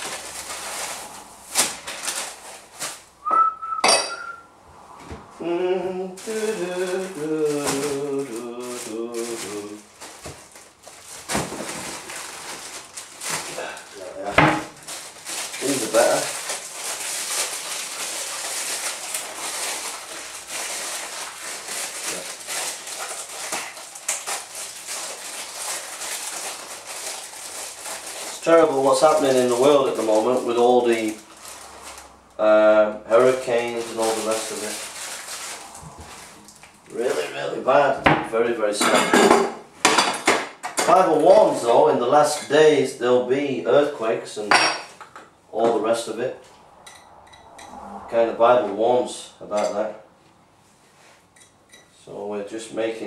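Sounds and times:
plastic packaging crinkling: 0:00.0 - 0:03.3, 0:06.2 - 0:32.4, 0:33.1 - 0:37.4
wrapping rustling: 0:00.0 - 0:03.3, 0:06.2 - 0:32.4, 0:33.1 - 0:37.4
sharp ringing clink: 0:03.8 - 0:04.3
dishes and cutlery clattering: 0:38.8 - 0:41.4.

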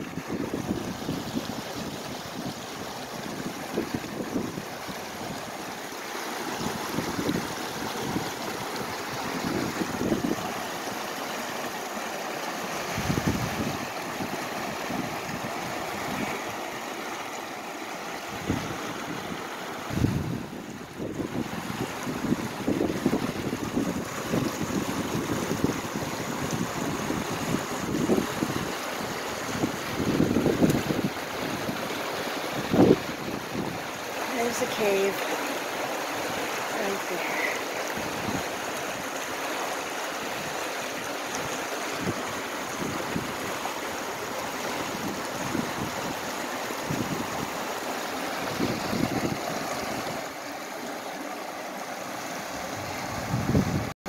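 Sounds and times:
wind buffeting microphone: 0:00.0 - 0:05.6, 0:06.6 - 0:10.6, 0:12.9 - 0:16.6, 0:18.3 - 0:35.0, 0:37.9 - 0:38.7, 0:41.4 - 0:47.6, 0:48.3 - 0:50.3, 0:52.5 - 0:53.9
river water flowing: 0:00.0 - 0:54.0.

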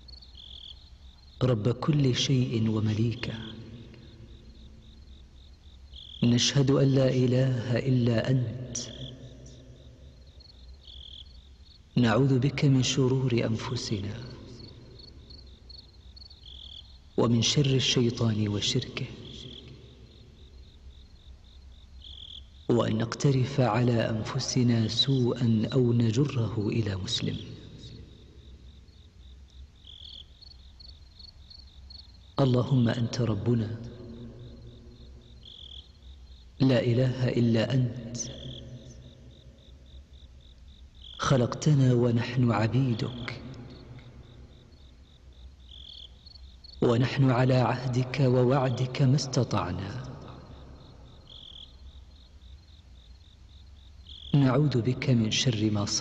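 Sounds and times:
cricket chirping: 0:00.0 - 0:56.0
man's voice: 0:01.4 - 0:03.9, 0:06.2 - 0:09.1, 0:12.0 - 0:14.6, 0:17.2 - 0:19.6, 0:22.7 - 0:28.0, 0:32.4 - 0:34.3, 0:36.6 - 0:38.8, 0:41.2 - 0:43.8, 0:46.8 - 0:50.4, 0:54.3 - 0:56.0.

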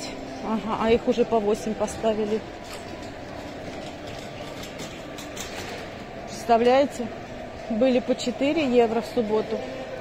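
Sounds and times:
low hum of store noise: 0:00.0 - 0:10.0
trolley wheels rattling on tiles: 0:02.2 - 0:06.5.

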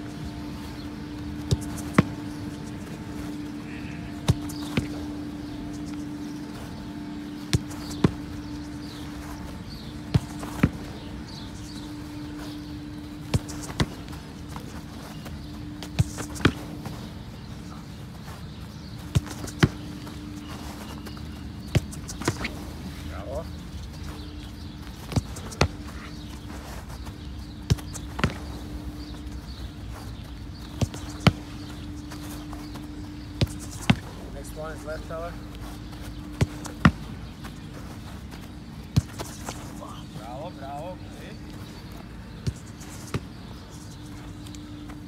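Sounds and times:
football kicked: 0:00.9 - 0:02.7, 0:04.1 - 0:05.1, 0:07.4 - 0:09.0, 0:10.0 - 0:11.9, 0:19.0 - 0:20.4, 0:27.6 - 0:28.6, 0:30.6 - 0:34.1, 0:36.2 - 0:37.6
ball hitting goalkeeper gloves: 0:30.6 - 0:32.1.

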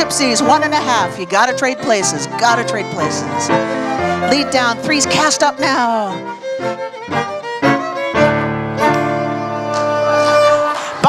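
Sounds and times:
fiddle melody: 0:00.0 - 0:11.0
piano accompaniment: 0:00.0 - 0:11.0.

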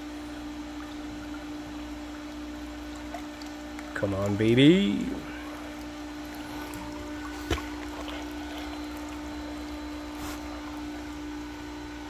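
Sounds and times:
pump humming: 0:00.0 - 0:12.0
water washing: 0:00.6 - 0:12.0.

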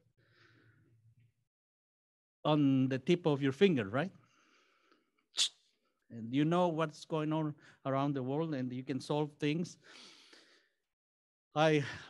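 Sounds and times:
man's sharp breath: 0:09.8 - 0:10.8.

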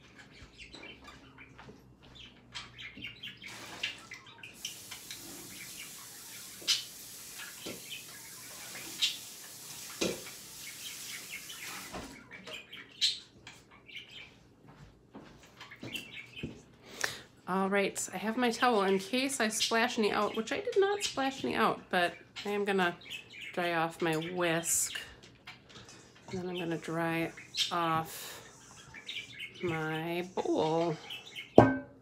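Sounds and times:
sink tap running: 0:04.6 - 0:11.9
metal bowl knocking against sink: 0:31.6 - 0:32.0.

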